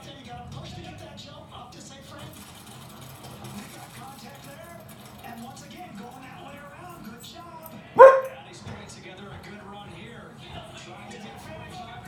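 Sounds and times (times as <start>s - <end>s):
television sound: 0.0s - 12.0s
dog barking: 8.0s - 8.4s.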